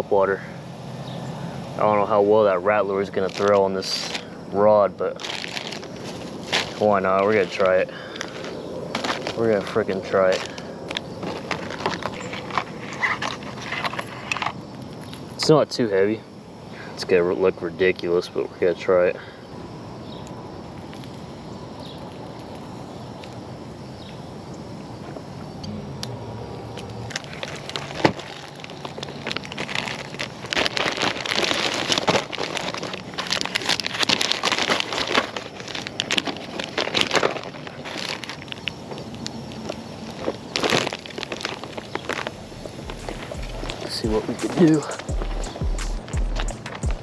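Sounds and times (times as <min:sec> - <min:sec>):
steady background noise: 0:00.0 - 0:47.0
plastic packaging crinkling: 0:03.0 - 0:04.4, 0:05.0 - 0:15.3, 0:27.0 - 0:45.6.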